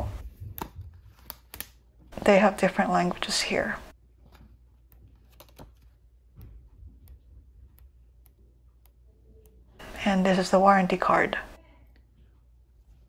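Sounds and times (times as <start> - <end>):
paper booklet and card handled: 0.2 - 2.2, 4.1 - 6.6.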